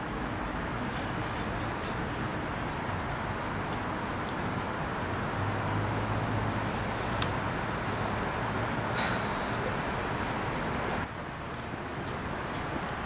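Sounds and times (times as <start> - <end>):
distant traffic: 0.0 - 13.0.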